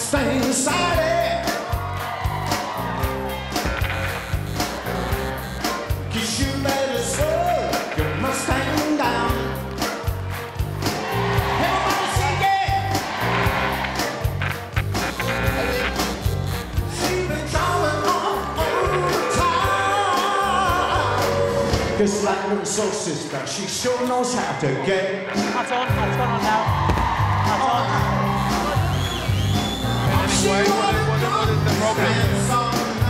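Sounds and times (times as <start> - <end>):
man singing: 0.0 - 1.7, 6.0 - 9.6, 16.9 - 22.4, 30.0 - 33.0.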